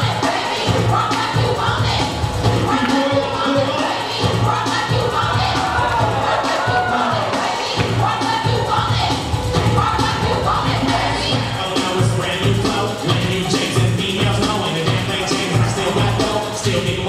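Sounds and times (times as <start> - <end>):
crowd cheering and shouting: 0.0 - 17.0
hip-hop music with heavy bass: 0.0 - 17.0.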